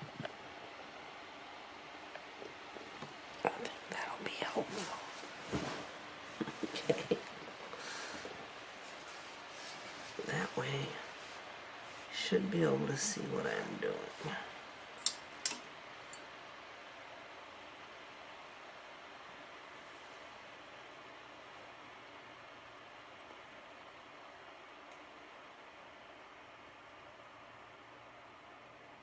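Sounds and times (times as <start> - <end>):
faint room noise hiss: 0.0 - 29.0.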